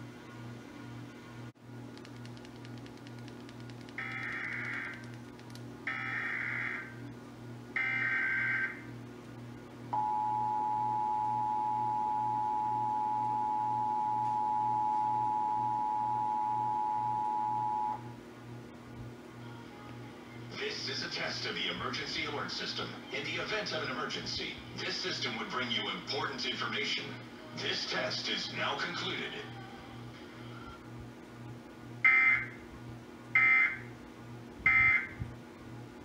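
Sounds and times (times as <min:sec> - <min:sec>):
low pulsing hum: 0:00.0 - 0:36.0
two-tone attention signal: 0:10.0 - 0:18.0.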